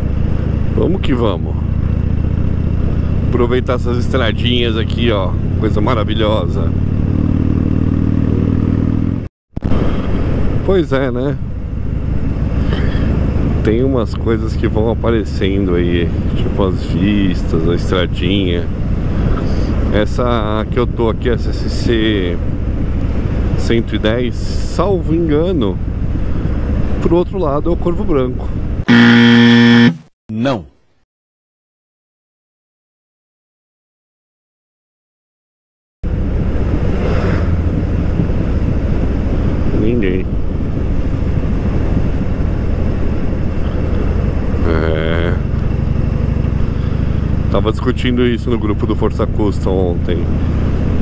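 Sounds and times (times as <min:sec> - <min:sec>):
motorcycle engine cruising: 0:00.0 - 0:20.0, 0:28.9 - 0:30.1, 0:36.1 - 0:48.9, 0:49.5 - 0:51.0
short falling-pitch sound: 0:28.9 - 0:30.1
wrong answer buzzer: 0:28.9 - 0:30.1.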